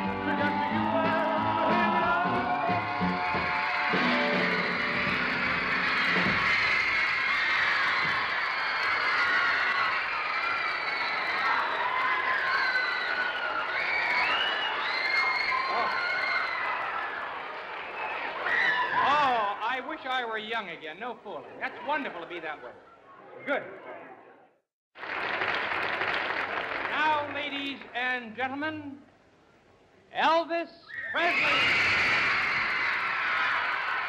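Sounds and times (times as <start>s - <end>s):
band playing: 0.0s - 6.4s
audience screaming and cheering: 0.0s - 19.4s, 31.2s - 34.0s.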